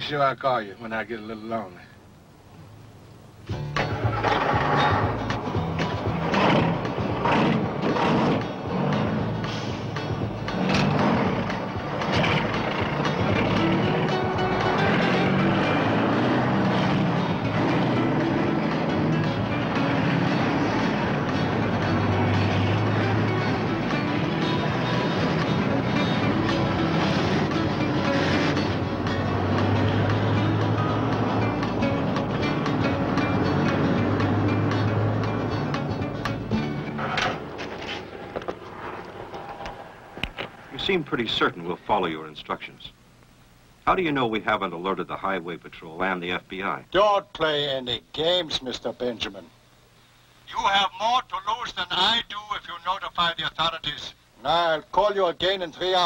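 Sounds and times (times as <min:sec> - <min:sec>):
trucks running: 0:02.0 - 0:41.8
film music with stepping bass: 0:03.4 - 0:39.4.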